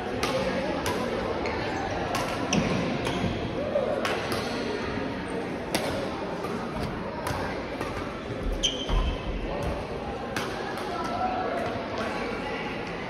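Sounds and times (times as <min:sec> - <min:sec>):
shoe squeak: 0:08.6 - 0:09.4.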